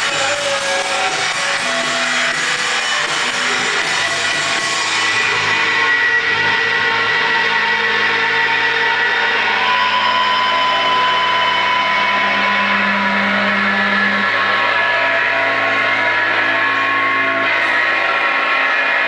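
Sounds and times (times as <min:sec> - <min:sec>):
distorted guitar drone and feedback: 0:00.0 - 0:19.0.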